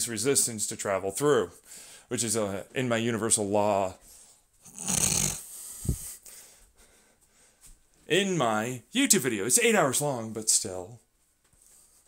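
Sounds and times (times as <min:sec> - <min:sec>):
rough snore-like breath: 0:04.7 - 0:06.2.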